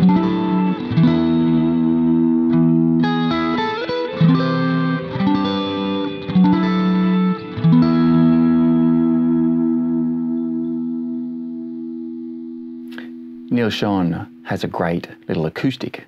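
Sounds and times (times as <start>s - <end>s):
electric guitar chords with echo: 0.0s - 15.3s.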